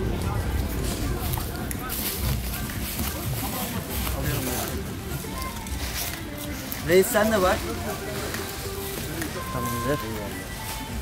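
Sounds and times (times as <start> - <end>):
background music: 0.0 - 11.0
indistinct talk: 0.0 - 11.0.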